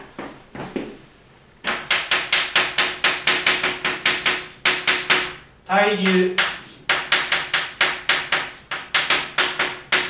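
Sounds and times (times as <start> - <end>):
chalk tapping and writing on blackboard: 0.2 - 1.0, 1.6 - 10.0.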